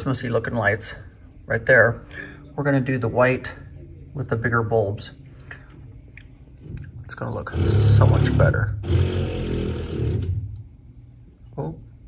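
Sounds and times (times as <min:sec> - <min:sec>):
cordless drill running: 0:08.8 - 0:10.4.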